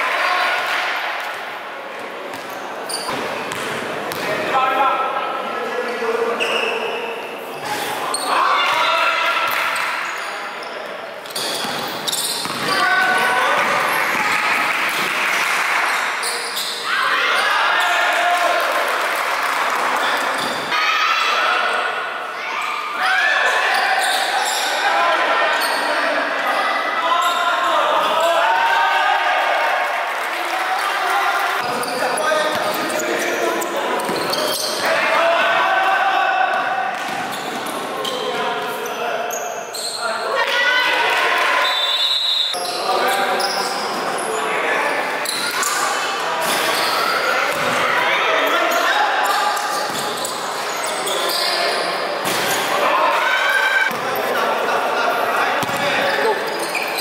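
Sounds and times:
basketball bouncing on court: 0:03.1 - 0:04.3, 0:11.6 - 0:12.8, 0:55.6 - 0:56.0
players shouting: 0:33.9 - 0:37.0
referee's whistle: 0:41.6 - 0:42.7.

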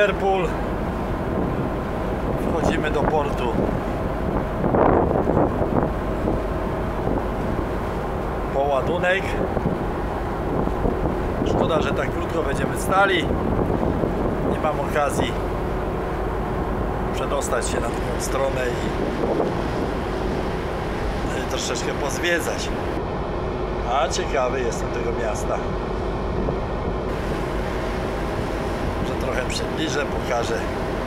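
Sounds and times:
wind buffeting microphone: 0:00.0 - 0:23.8, 0:24.8 - 0:31.0
steady low rumble: 0:00.0 - 0:31.0
water washing along hull: 0:00.0 - 0:31.0.

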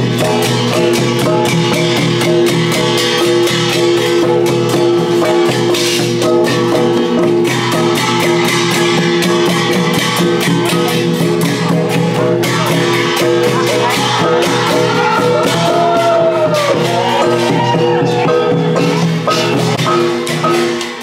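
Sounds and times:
drums and gongs beating: 0:00.0 - 0:21.0.

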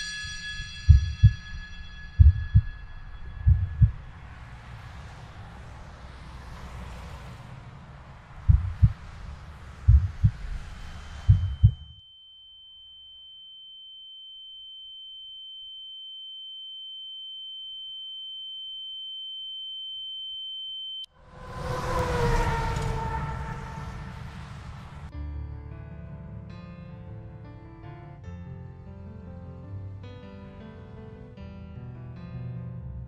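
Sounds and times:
low thumps: 0:00.6 - 0:04.4, 0:08.3 - 0:12.0
rush of noise with falling tones: 0:08.2 - 0:11.9, 0:21.2 - 0:25.1.

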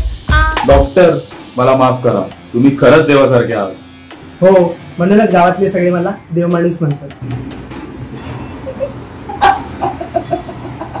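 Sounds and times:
woman laughing hard: 0:08.6 - 0:11.0.

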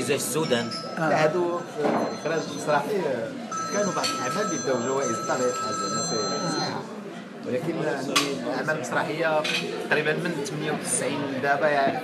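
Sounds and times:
electronic ringing tone: 0:00.0 - 0:06.9
men talking: 0:00.0 - 0:12.0.

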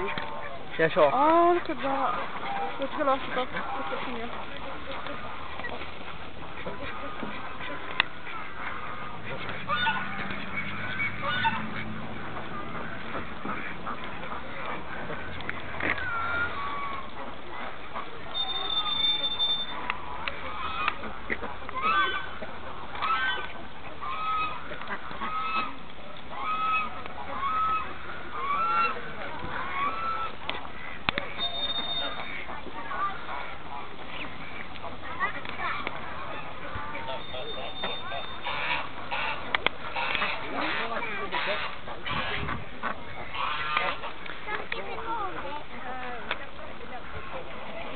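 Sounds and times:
ducks whistling calls: 0:00.0 - 0:45.5.

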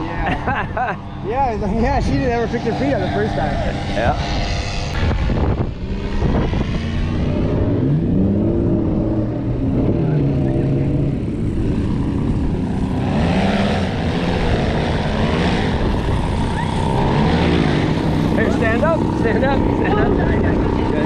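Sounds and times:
paramotor engine running: 0:00.0 - 0:21.0
propeller rushing: 0:00.0 - 0:21.0.

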